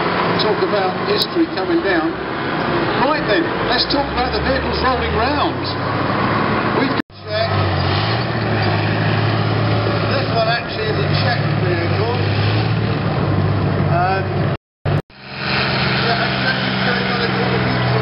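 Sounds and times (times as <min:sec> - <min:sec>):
diesel engine droning: 0:00.0 - 0:18.0.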